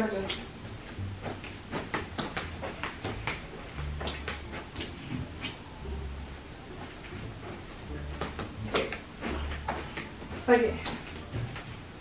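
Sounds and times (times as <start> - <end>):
footsteps on carpet: 6.8 - 11.9.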